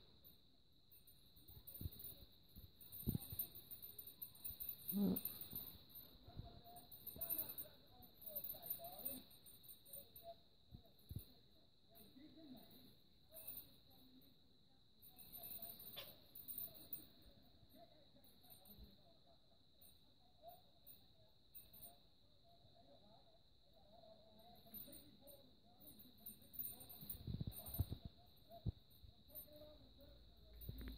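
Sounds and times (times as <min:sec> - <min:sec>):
small metal bell jingling: 0:00.0 - 0:30.9.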